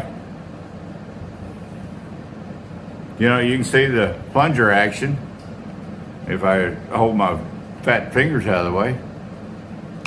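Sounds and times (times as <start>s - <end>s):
steady fan-like noise: 0.0s - 10.0s.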